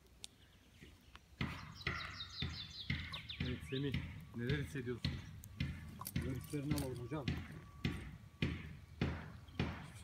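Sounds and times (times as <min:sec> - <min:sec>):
close knocks: 0:01.4 - 0:10.0
songbird singing high notes: 0:01.5 - 0:05.6.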